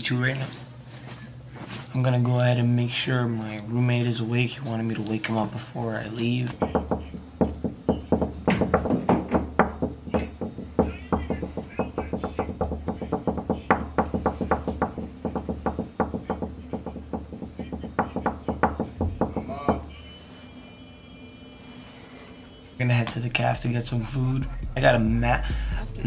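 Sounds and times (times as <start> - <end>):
knuckles knocking on wooden door: 6.6 - 19.9.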